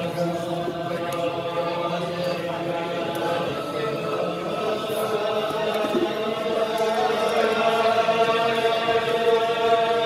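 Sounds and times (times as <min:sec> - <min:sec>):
men singing in unison: 0:00.0 - 0:10.0.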